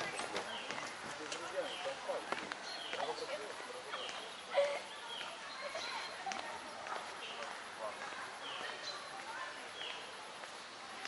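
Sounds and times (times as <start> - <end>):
distant indistinct voices: 0.0 - 11.0
footsteps on paving: 0.0 - 11.0.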